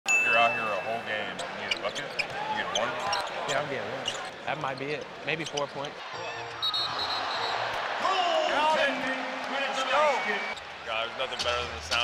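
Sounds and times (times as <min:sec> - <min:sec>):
arena crowd chatter: 0:00.9 - 0:12.0
referee's whistle blast: 0:06.6 - 0:07.6.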